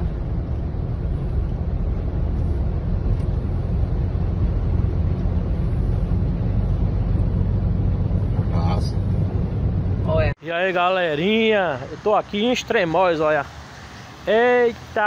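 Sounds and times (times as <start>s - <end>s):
car cabin low rumble: 0.0s - 10.4s.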